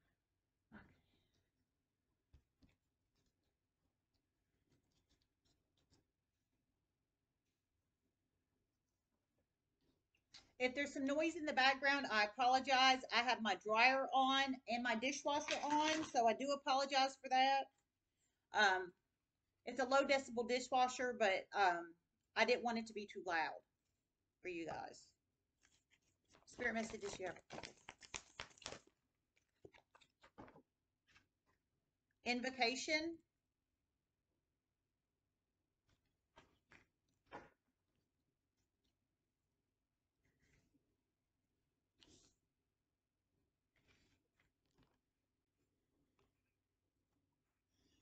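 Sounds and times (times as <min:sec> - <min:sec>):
cards being shuffled: 0:25.6 - 0:29.0
cards tapping: 0:26.6 - 0:28.9.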